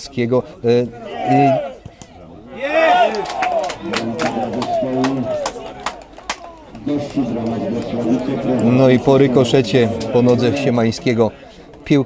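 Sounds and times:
men shouting: 0:00.9 - 0:01.8, 0:02.5 - 0:11.0
sharp claps: 0:03.0 - 0:08.8.

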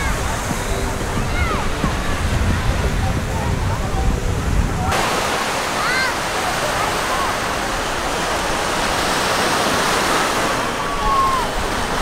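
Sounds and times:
faint distant voices: 0:00.0 - 0:12.0
surf washing onto sand: 0:00.0 - 0:12.0.

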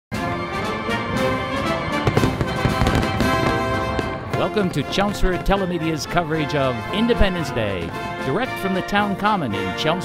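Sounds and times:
orchestral music with brass: 0:00.1 - 0:10.0
fireworks bangs and crackling: 0:01.5 - 0:06.6.

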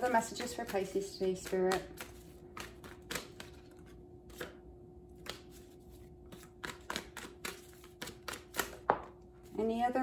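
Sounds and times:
cards being shuffled: 0:00.5 - 0:09.1.

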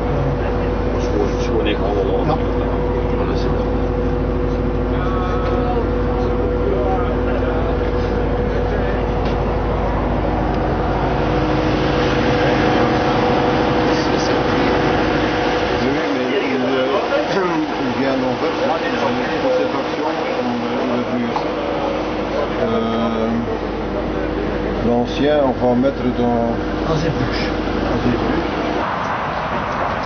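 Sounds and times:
low rumble: 0:00.0 - 0:24.9
machinery hum with held tones: 0:00.0 - 0:30.0.

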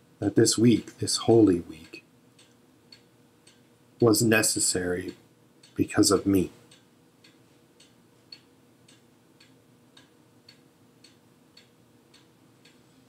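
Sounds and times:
clock ticking: 0:01.4 - 0:12.9.

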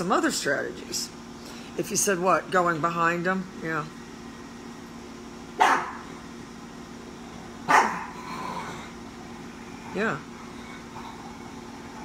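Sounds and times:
dog barking: 0:05.6 - 0:06.1, 0:07.7 - 0:08.2.

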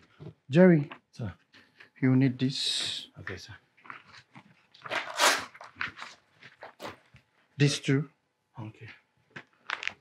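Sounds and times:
paper rustling and shuffling: 0:04.1 - 0:07.2.

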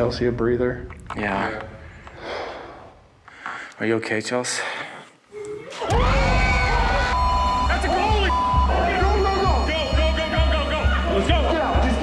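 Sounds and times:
people shouting: 0:05.7 - 0:11.3
dramatic score with bass pulse: 0:05.9 - 0:12.0
censor bleep tones: 0:06.3 - 0:12.0.

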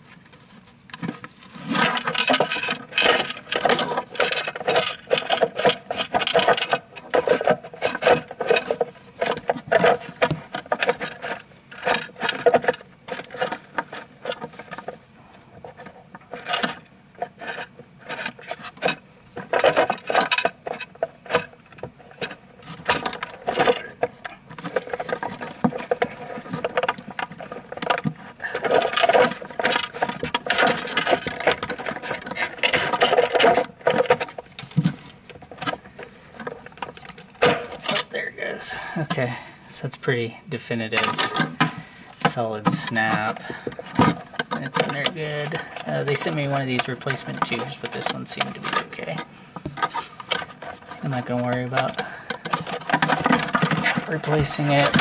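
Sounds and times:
plastic parts rubbing and clicking: 0:00.0 - 0:55.0.

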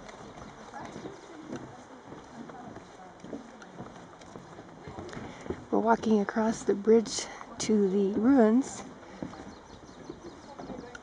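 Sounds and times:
footsteps on a footbridge: 0:00.0 - 0:11.0.

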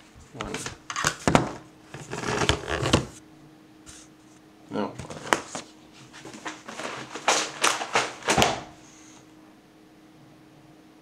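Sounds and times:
rustling: 0:05.0 - 0:09.1.

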